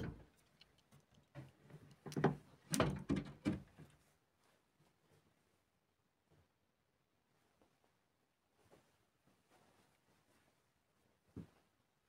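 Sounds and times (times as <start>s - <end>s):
soft knocks and bumps: 11.3s - 11.7s.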